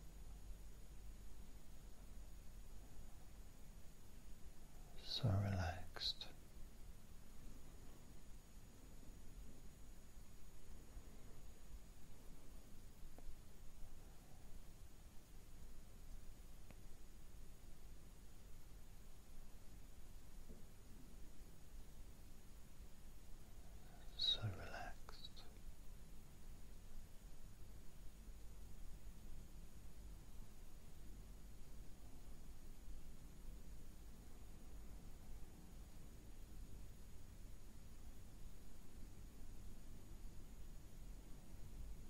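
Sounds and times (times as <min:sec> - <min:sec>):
person whispering: 0:04.8 - 0:06.4, 0:23.6 - 0:25.6
man saying word softly: 0:04.9 - 0:06.4, 0:24.0 - 0:25.6
faint ticks: 0:13.0 - 0:13.4, 0:16.6 - 0:16.9.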